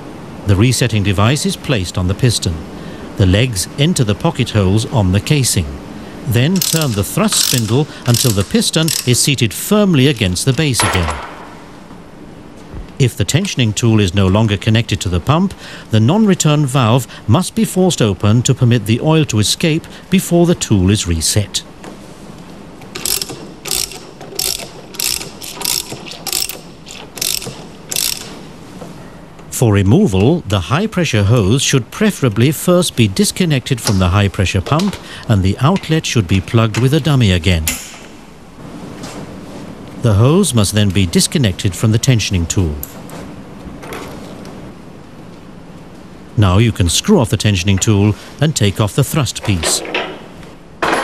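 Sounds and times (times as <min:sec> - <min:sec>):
steady background hiss: 0:00.0 - 0:51.0
ratchet wrench clicking: 0:06.6 - 0:09.3, 0:23.0 - 0:28.4.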